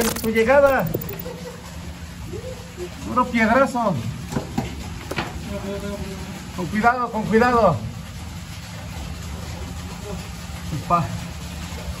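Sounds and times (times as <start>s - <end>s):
motor running with low hum: 0.0s - 12.0s.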